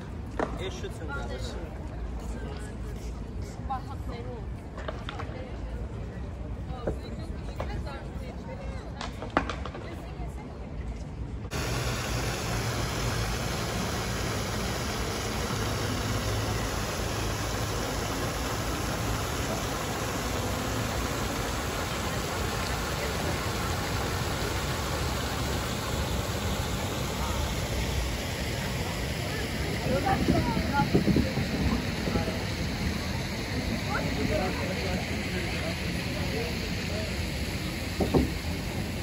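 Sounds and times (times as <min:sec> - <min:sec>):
fountain water splashing: 0:11.5 - 0:39.0.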